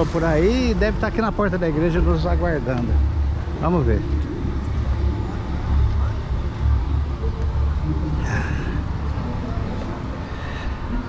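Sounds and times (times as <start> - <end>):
faint voices: 0.0 - 11.0
steady low rumble: 0.0 - 11.0.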